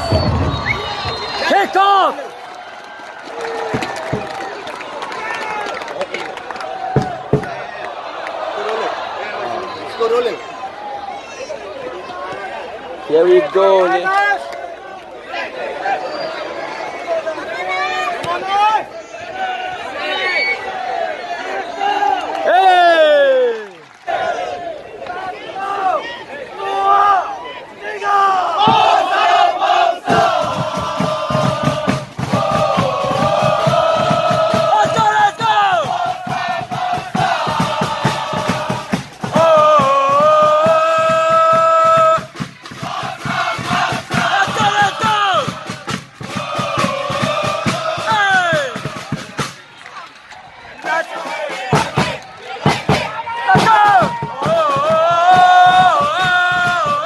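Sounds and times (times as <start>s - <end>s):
steady drum beat: 0.0s - 1.8s, 28.6s - 49.6s, 51.4s - 57.0s
crowd chanting: 0.0s - 57.0s.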